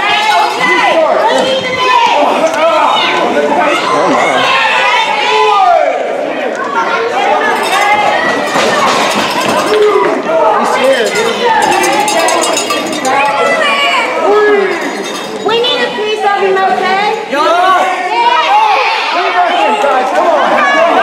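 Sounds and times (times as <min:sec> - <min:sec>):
crowd shouting: 0:00.0 - 0:21.0.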